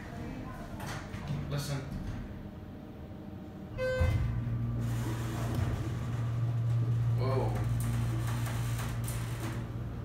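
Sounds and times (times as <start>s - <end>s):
elevator pump motor humming: 3.6s - 10.0s.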